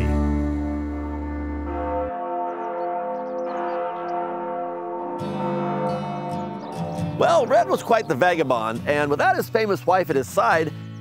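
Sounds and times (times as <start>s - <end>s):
church bells ringing: 0.0s - 9.3s.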